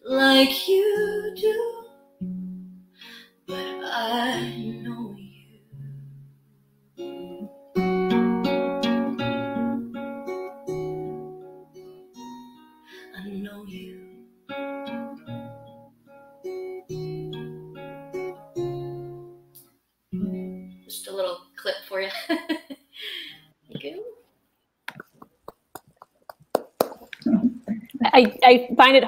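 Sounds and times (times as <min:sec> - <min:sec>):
acoustic guitar chords: 0:00.1 - 0:22.0.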